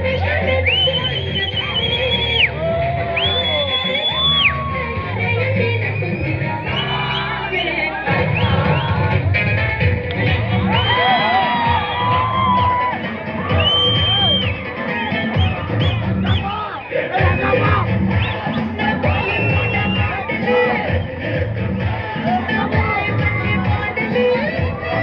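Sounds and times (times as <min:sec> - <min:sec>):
dance music over loudspeakers: 0:00.0 - 0:25.0
high whistles: 0:00.6 - 0:02.6, 0:03.2 - 0:04.6, 0:05.9 - 0:07.4, 0:13.5 - 0:20.1
audience cheering: 0:01.0 - 0:05.4, 0:10.3 - 0:20.8
people shouting: 0:02.4 - 0:05.5, 0:10.2 - 0:21.1.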